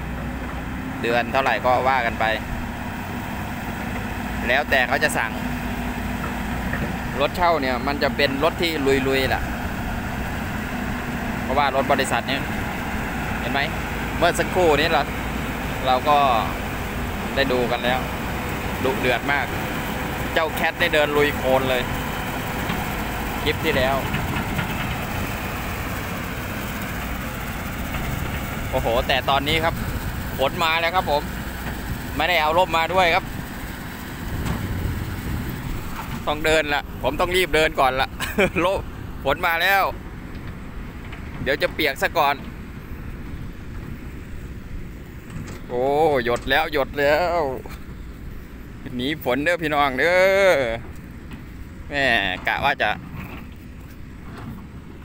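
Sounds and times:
excavator diesel engine running: 0:00.0 - 0:55.0.

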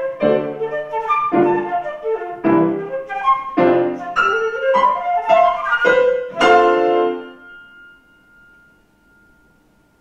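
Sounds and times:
low room hiss: 0:00.0 - 0:10.0
grand piano chord ringing: 0:06.3 - 0:10.0.

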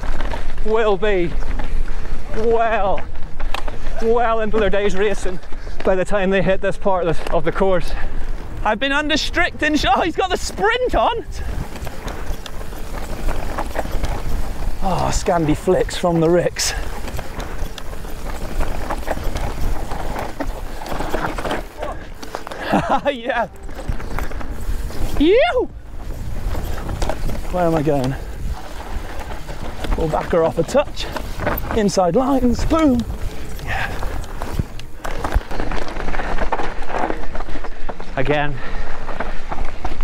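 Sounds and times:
bike tyre noise: 0:00.0 - 0:40.0
bike knocks and rattles: 0:09.6 - 0:37.9
bike knocking over bumps: 0:10.6 - 0:23.0
wind rumble on microphone: 0:10.7 - 0:22.8, 0:23.5 - 0:37.8.

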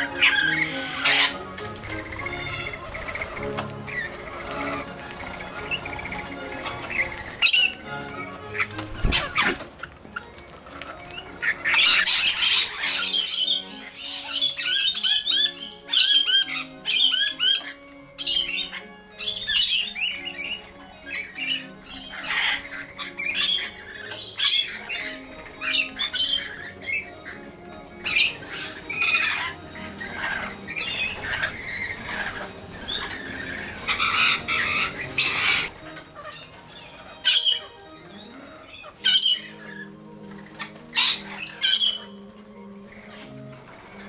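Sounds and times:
background music: 0:00.0 - 0:44.0
lorikeets screeching: 0:00.0 - 0:44.0.

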